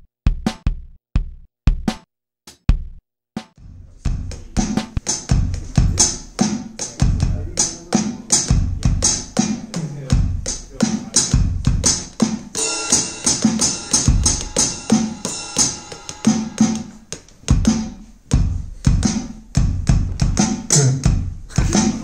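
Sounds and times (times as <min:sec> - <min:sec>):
drum machine beat: 0:00.0 - 0:22.0
sustained ringing sound: 0:12.6 - 0:16.6.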